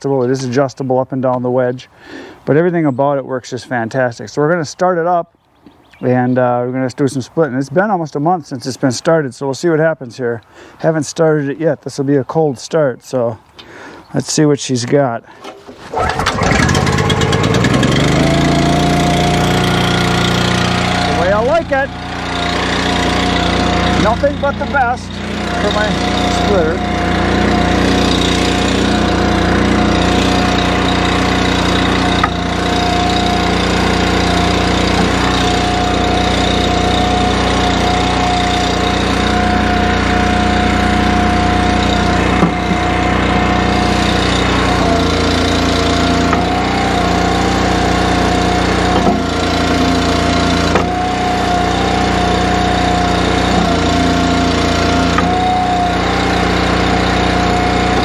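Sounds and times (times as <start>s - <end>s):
log splitter engine running: 15.4s - 58.0s.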